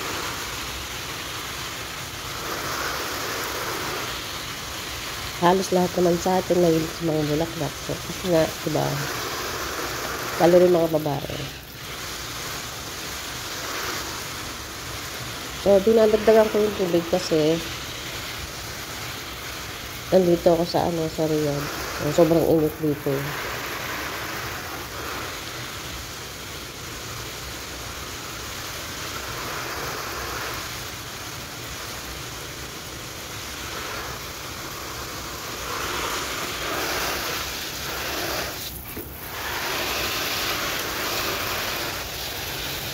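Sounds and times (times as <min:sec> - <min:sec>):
hose spray hissing on plants: 0:00.0 - 0:42.9.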